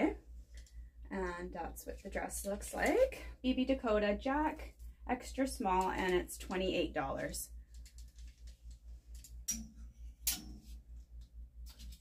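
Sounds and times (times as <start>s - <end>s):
low pulsing hum: 0.0s - 12.0s
hangers clicking on metal rack: 9.2s - 10.8s.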